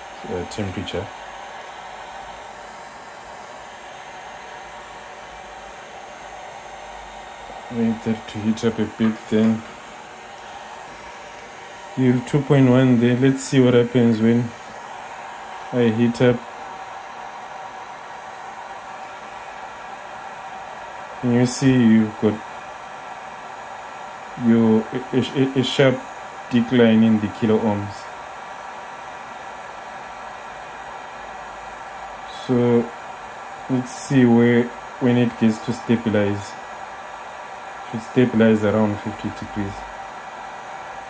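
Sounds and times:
heat gun fan blowing air: 0:00.0 - 0:41.0.

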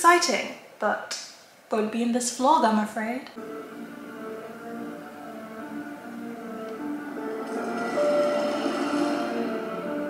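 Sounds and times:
horror film score music: 0:03.4 - 0:10.0.

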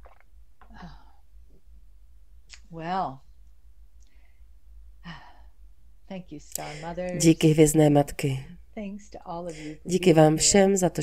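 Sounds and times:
faint low hum: 0:00.0 - 0:11.0
woman sighing: 0:00.6 - 0:01.2, 0:05.0 - 0:05.5.

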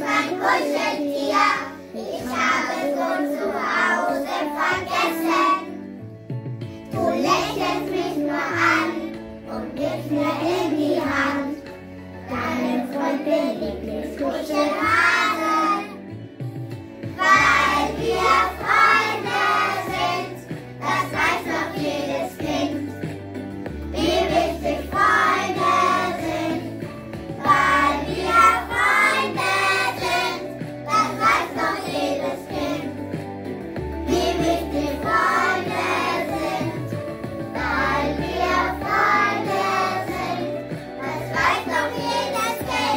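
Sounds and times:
children singing: 0:00.0 - 0:05.8, 0:07.0 - 0:16.0, 0:17.2 - 0:22.9, 0:23.9 - 0:26.8, 0:27.4 - 0:33.0, 0:34.0 - 0:42.9
instrumental accompaniment with bass: 0:05.3 - 0:42.9.

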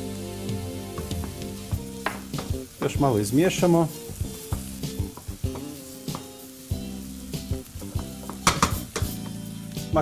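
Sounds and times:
vegetables sizzling in a frying pan: 0:00.0 - 0:10.0.

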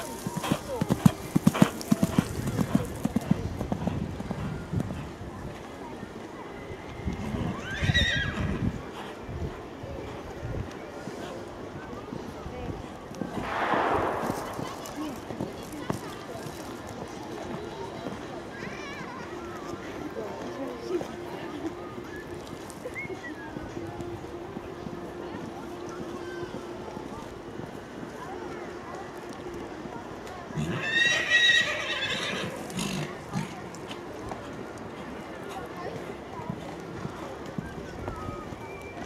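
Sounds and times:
outdoor ambience: 0:00.0 - 0:39.0
people talking in background: 0:00.0 - 0:39.0
horse whinnying: 0:07.6 - 0:08.4, 0:30.7 - 0:32.5
rushing burst of noise: 0:13.4 - 0:15.8.

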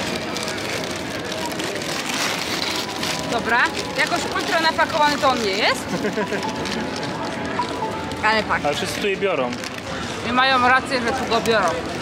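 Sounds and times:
paper wrapper crinkling: 0:00.0 - 0:09.9
crowd chatter: 0:00.0 - 0:12.0.

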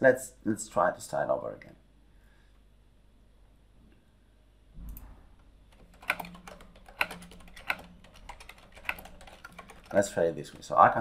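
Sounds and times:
computer keyboard typing: 0:05.7 - 0:11.0.

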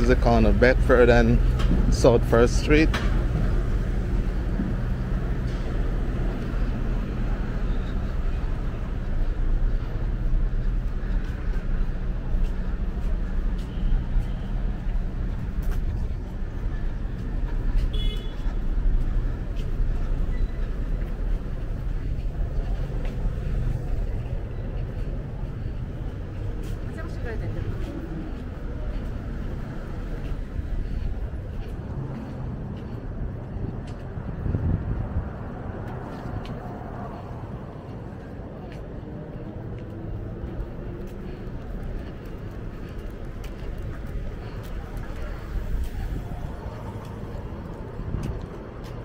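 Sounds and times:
people talking: 0:00.0 - 0:03.0, 0:26.9 - 0:29.0
road traffic rumble: 0:00.0 - 0:49.0.

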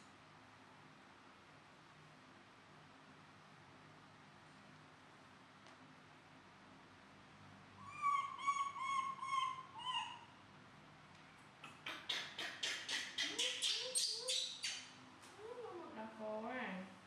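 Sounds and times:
baby monkey high-pitched calls: 0:07.8 - 0:10.4, 0:11.6 - 0:14.9.

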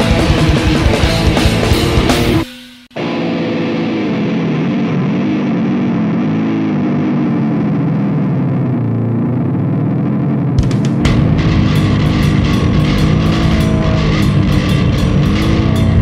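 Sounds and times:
drums and full band: 0:00.0 - 0:03.8, 0:10.6 - 0:16.0
distorted electric guitar: 0:00.0 - 0:16.0.

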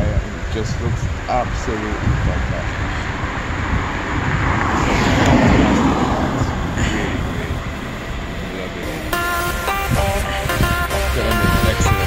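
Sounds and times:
wind buffeting microphone: 0:00.0 - 0:09.1
background music with held notes: 0:08.8 - 0:12.0.

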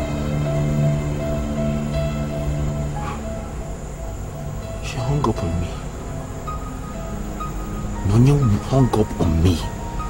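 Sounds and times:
brooding film score drone: 0:00.0 - 0:10.0.

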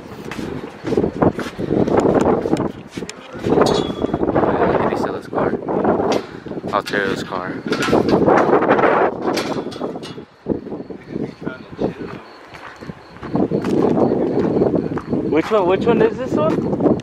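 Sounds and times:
people talking indistinctly: 0:02.5 - 0:16.8.

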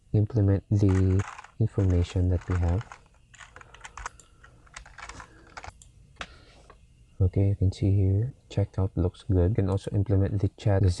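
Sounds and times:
computer keyboard typing: 0:00.8 - 0:05.8.

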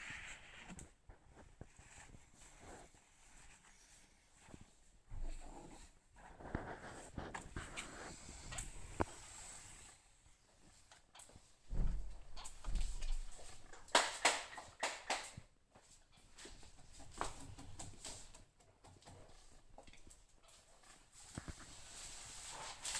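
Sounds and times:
rustling: 0:00.0 - 0:14.1, 0:15.8 - 0:22.9.

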